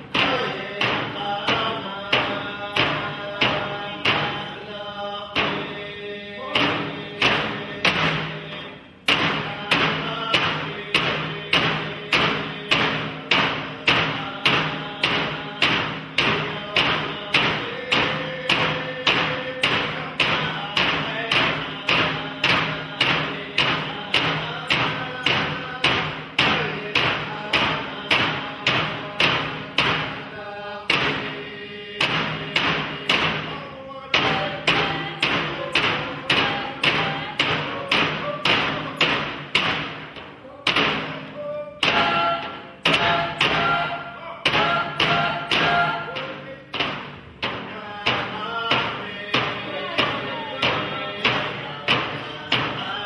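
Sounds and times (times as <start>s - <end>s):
frame drums beating: 0.0s - 53.0s
people singing: 0.0s - 53.0s.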